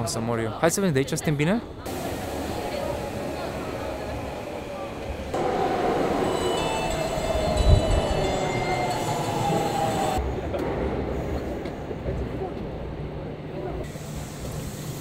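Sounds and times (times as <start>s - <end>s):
subway train braking whine: 1.9s - 12.4s
dull train rumble: 1.9s - 14.0s.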